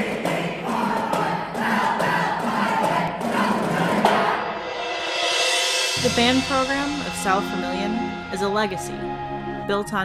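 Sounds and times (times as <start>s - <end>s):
crowd shouting and chanting: 0.0s - 4.7s
sharp hits: 4.0s - 8.6s.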